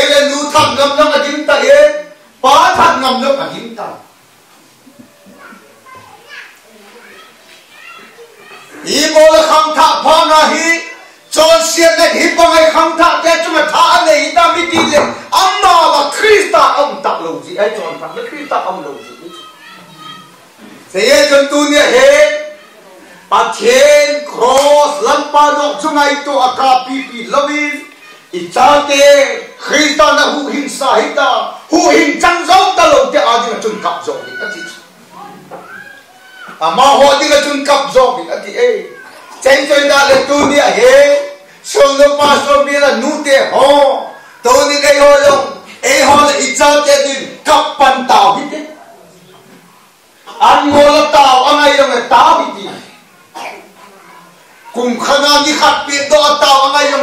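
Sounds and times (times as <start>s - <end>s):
young children chattering: 4.1s - 9.5s, 10.4s - 11.9s, 14.8s - 30.7s, 31.4s - 47.5s, 48.4s - 57.0s
faint high-pitched rising cries: 17.8s - 20.5s, 33.8s - 36.6s.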